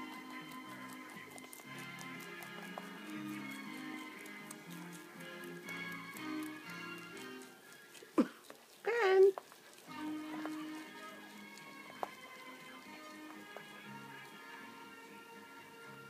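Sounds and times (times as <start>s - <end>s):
rabbit chewing with crunching clicks: 0.0s - 15.8s
television background music: 0.0s - 16.0s.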